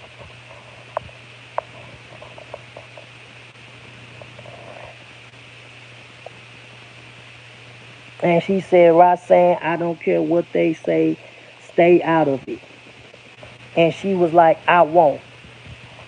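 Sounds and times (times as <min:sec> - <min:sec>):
faint hiss: 0:00.0 - 0:16.0
steady low hum: 0:00.0 - 0:16.0.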